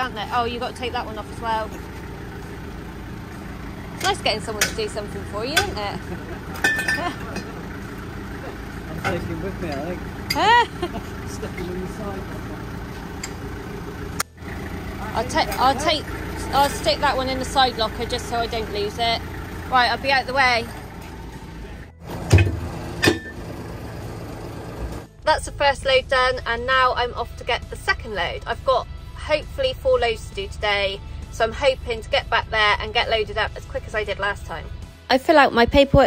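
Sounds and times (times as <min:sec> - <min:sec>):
steady low rumble: 0:00.0 - 0:22.0
engine idling: 0:00.0 - 0:35.4
heavy metal clunk: 0:03.9 - 0:10.6, 0:22.0 - 0:23.6
metallic knock with ring: 0:06.6 - 0:07.5.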